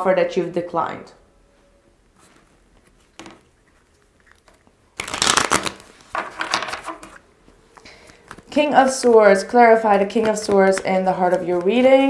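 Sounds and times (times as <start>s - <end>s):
cards being shuffled: 2.2s - 12.0s.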